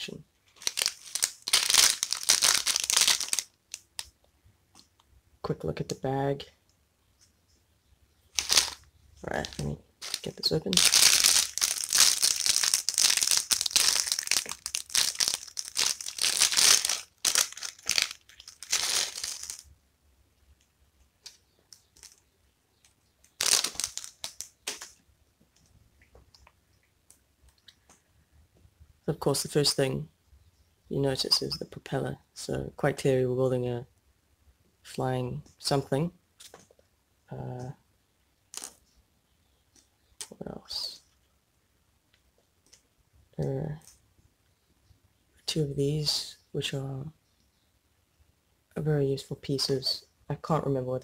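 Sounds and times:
plastic bag crinkling: 0.5s - 4.0s, 8.3s - 19.7s, 23.2s - 25.0s
plastic pieces clicking: 0.6s - 4.1s, 9.4s - 19.7s, 22.8s - 25.0s.

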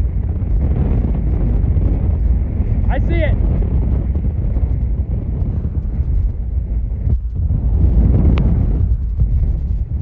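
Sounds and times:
strong wind buffeting microphone: 0.0s - 10.0s.

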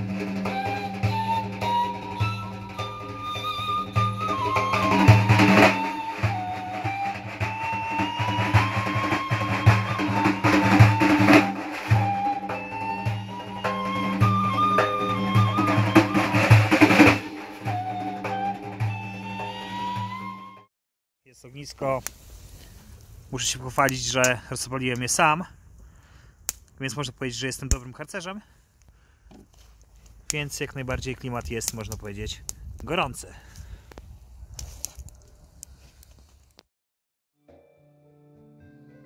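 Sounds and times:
frame drum roll: 0.0s - 19.0s
end-blown flute melody: 0.0s - 20.7s
wood fire crackling: 21.8s - 27.9s, 28.6s - 36.7s
sharp pops of fire: 26.4s - 26.8s.

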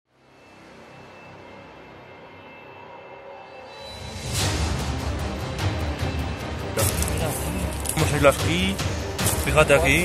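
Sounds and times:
drone-like backing music: 0.1s - 10.0s.

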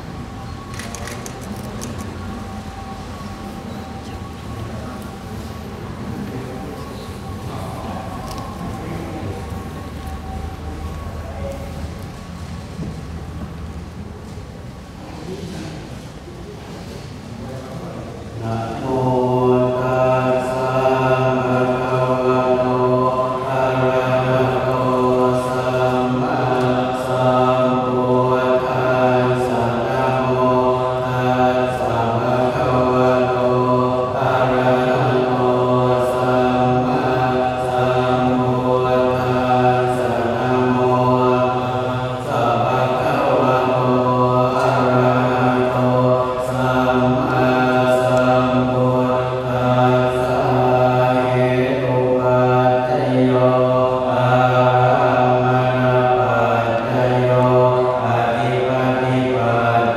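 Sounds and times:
monks chanting in low recitation: 0.0s - 59.9s.

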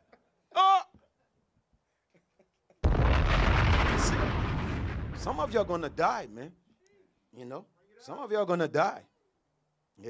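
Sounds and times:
explosion boom: 2.8s - 6.2s.

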